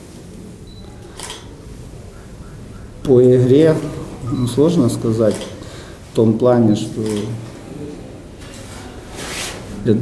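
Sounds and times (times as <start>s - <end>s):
low room rumble: 0.0s - 10.0s
sharp click: 7.0s - 7.3s.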